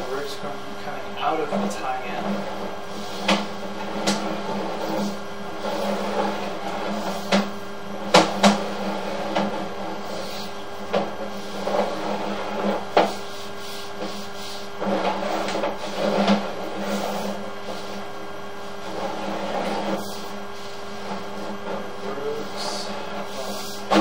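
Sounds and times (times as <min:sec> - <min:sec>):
steady low hum: 0:00.0 - 0:24.0.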